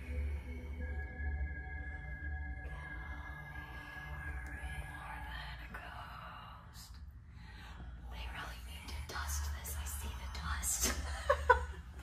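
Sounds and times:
low steady rumble: 0:00.0 - 0:12.0
person whispering: 0:02.6 - 0:07.2, 0:07.8 - 0:11.1.

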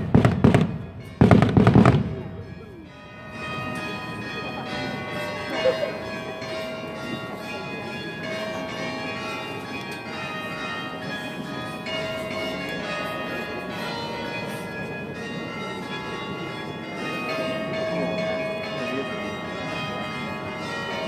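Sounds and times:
church bells ringing: 0:00.0 - 0:21.0
crowd murmur: 0:00.0 - 0:21.0.

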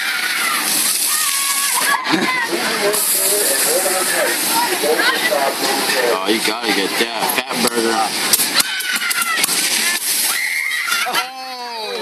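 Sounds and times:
water jet spraying and splashing: 0:00.0 - 0:12.0.

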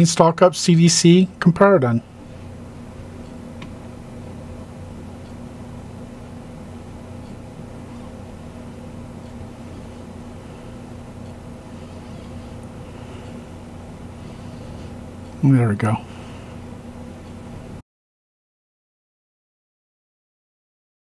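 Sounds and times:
machinery hum: 0:00.0 - 0:17.8
faint tick: 0:03.2 - 0:03.8, 0:05.2 - 0:05.4, 0:09.2 - 0:09.4.

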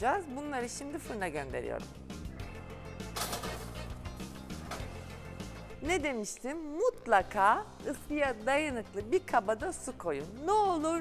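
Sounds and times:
background music: 0:00.0 - 0:11.0
baking dish scraping on oven rack: 0:03.2 - 0:05.2.

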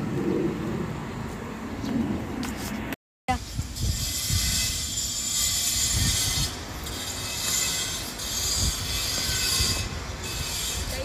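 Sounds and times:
wind buffeting microphone: 0:00.0 - 0:07.5, 0:08.1 - 0:11.0.

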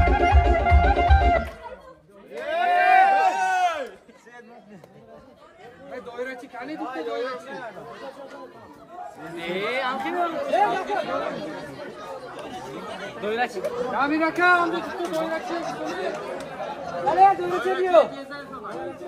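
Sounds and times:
crowd of men talking: 0:00.0 - 0:19.0.

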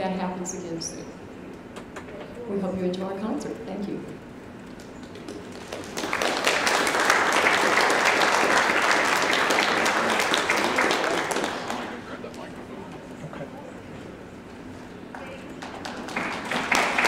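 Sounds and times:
audience applause: 0:05.0 - 0:12.3, 0:15.6 - 0:17.0.

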